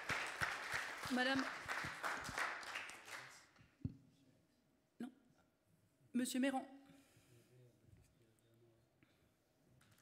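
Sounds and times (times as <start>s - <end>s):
audience applause: 0.0s - 3.4s.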